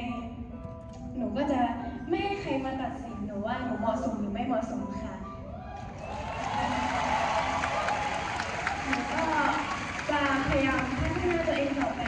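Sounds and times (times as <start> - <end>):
audience clapping: 6.0 - 12.0.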